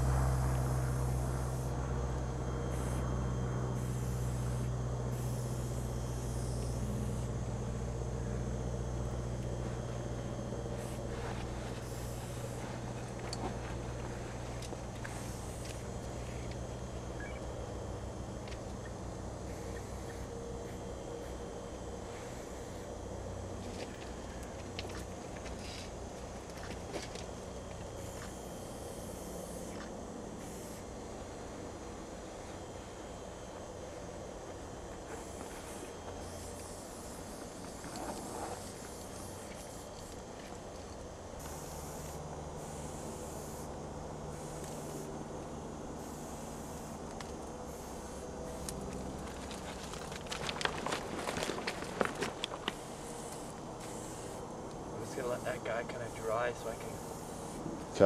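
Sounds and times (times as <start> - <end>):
low steady rumble: 0.0 - 35.1.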